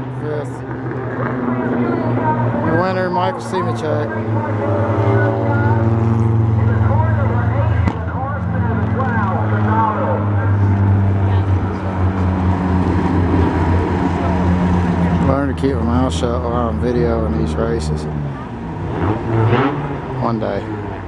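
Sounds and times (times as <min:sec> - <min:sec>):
indistinct talking: 0:00.0 - 0:21.0
race car engines droning: 0:00.0 - 0:21.0.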